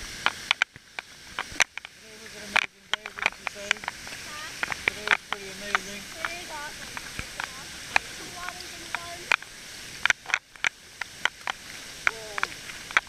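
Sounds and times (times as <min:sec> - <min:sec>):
water splashing against camera: 0:00.0 - 0:13.0
indistinct voices of bathers: 0:04.2 - 0:09.4.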